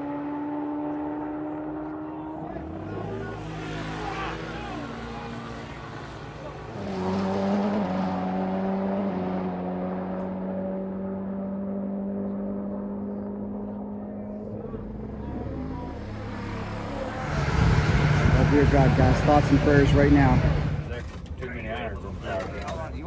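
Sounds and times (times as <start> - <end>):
voices: 1.7 - 7.4, 13.0 - 23.0
vehicle engine running: 12.2 - 23.0.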